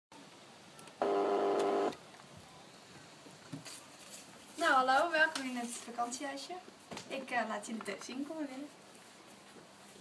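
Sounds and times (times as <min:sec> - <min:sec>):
electric doorbell buzzing: 0:01.0 - 0:01.9.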